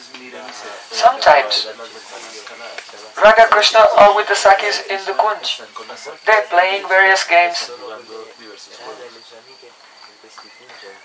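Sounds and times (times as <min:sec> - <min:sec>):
crickets chirring: 0:00.0 - 0:11.0
faint murmured speech: 0:00.0 - 0:11.0.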